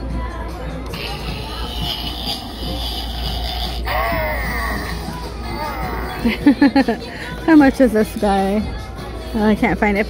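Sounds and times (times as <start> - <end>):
creepy toy sound effect: 0.9 - 6.3
wavering voice-like effect: 0.9 - 6.4.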